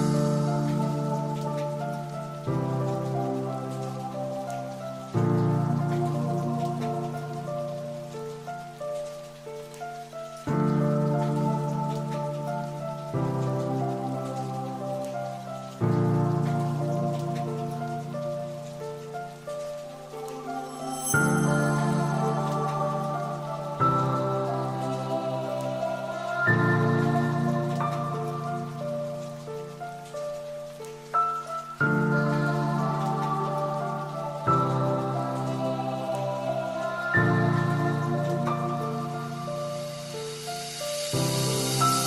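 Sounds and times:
faint steady hiss: 0.0s - 42.0s.

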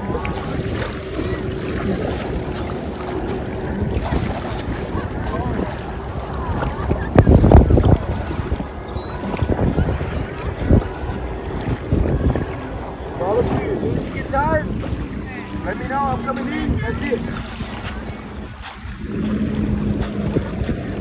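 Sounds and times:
water lapping and sloshing: 0.0s - 21.0s
wind buffeting microphone: 0.0s - 21.0s.

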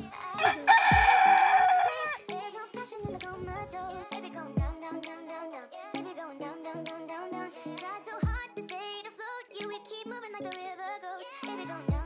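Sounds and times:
background music: 0.0s - 12.0s
rooster crowing: 0.4s - 2.2s.

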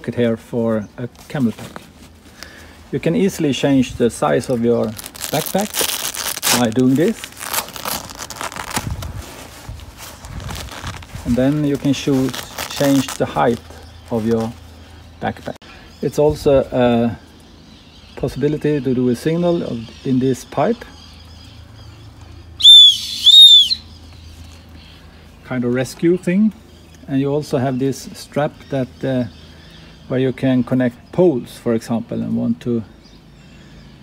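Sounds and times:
nylon fabric rustling and rubbing: 4.8s - 14.6s
shrill whistle blasts: 22.6s - 23.9s.

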